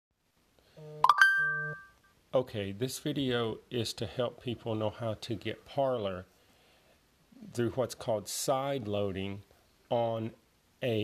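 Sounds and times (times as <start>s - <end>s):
bright two-note chime: 1.0s - 2.0s.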